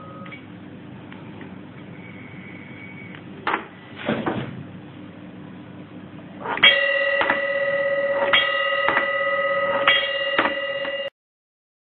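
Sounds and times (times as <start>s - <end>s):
sustained metallic ringing: 6.5s - 11.1s
striker hitting metal pot: 9.8s - 10.6s.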